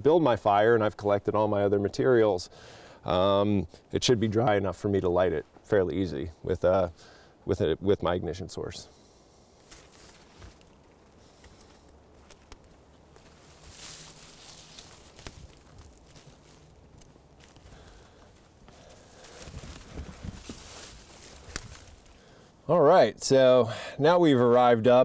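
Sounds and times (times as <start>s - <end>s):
footsteps through undergrowth: 9.0s - 22.6s.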